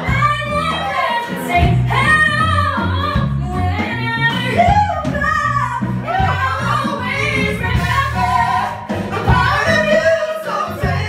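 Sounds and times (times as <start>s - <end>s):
woman singing pop ballad: 0.0s - 10.2s
band with guitars: 0.0s - 11.0s.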